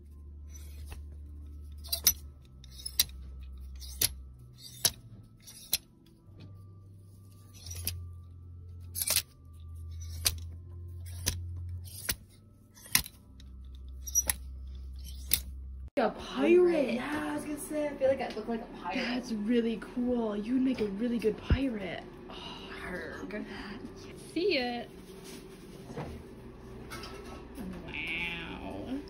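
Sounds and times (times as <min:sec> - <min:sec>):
low steady hum: 0:00.0 - 0:29.0
metal hangers clicking on rack rail: 0:01.7 - 0:05.9, 0:07.5 - 0:08.0, 0:08.8 - 0:15.5.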